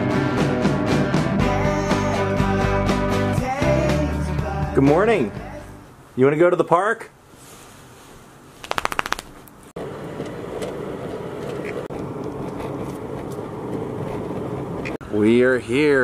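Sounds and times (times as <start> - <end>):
rapid rattling clicks: 8.6 - 9.3
car driving rumble: 9.8 - 15.0.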